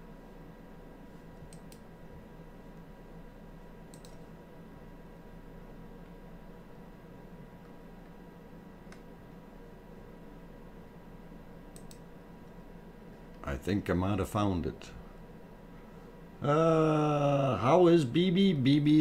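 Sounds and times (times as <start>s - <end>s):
steady low hum: 0.0s - 19.0s
computer mouse clicks: 1.5s - 1.9s, 3.9s - 4.3s, 8.8s - 9.1s, 11.7s - 12.1s.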